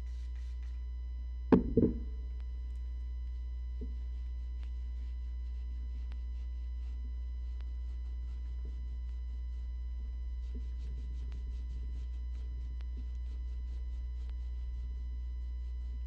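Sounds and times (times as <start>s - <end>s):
low electrical hum: 0.0s - 16.0s
thump on table: 1.5s - 2.2s.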